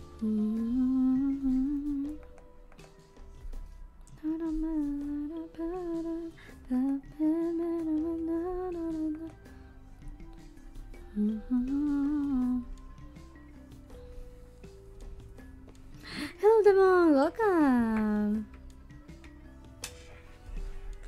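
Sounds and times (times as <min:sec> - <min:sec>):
woman humming: 0:00.0 - 0:02.4, 0:11.1 - 0:12.9
soft background music: 0:00.0 - 0:21.0.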